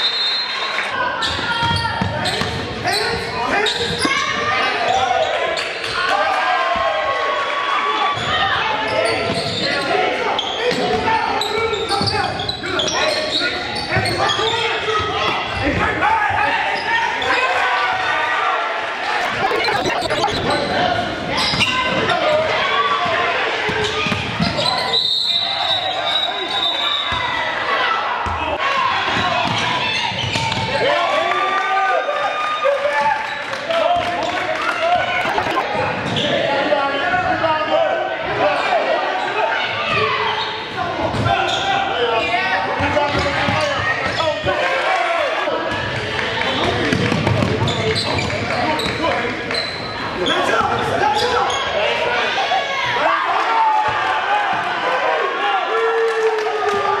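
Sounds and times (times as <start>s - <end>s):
crowd voices and shouting: 0.0s - 57.0s
voices calling out: 18.8s - 22.6s, 34.1s - 36.3s.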